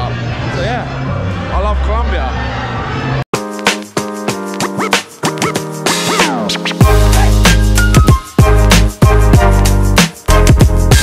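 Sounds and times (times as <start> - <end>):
record-scratch effects: 3.4 - 9.0.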